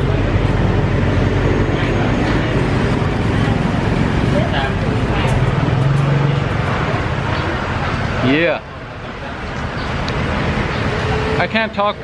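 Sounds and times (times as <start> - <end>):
vehicle engine running: 0.0 - 7.3
people's voices: 0.0 - 10.1.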